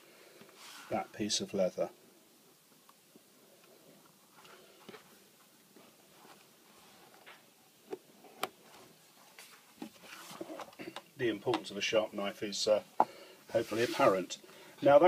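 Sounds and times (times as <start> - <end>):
rustling: 3.6 - 10.9, 13.5 - 14.4.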